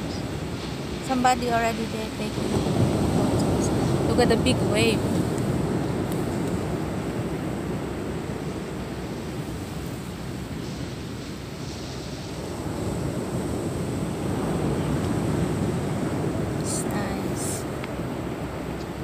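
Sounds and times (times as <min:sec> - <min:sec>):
waves breaking on a beach: 0:00.0 - 0:19.0
wind rumble on microphone: 0:00.0 - 0:19.0.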